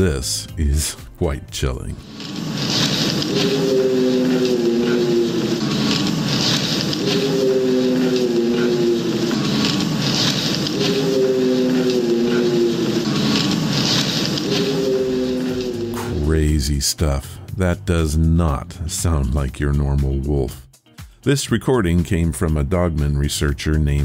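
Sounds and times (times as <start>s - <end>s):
steady hiss: 2.0s - 16.3s
low drawn-out howl: 2.1s - 16.3s.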